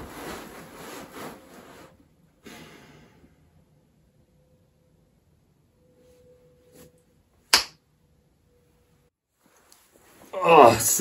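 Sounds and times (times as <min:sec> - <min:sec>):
sharp snap: 0:07.5 - 0:07.8.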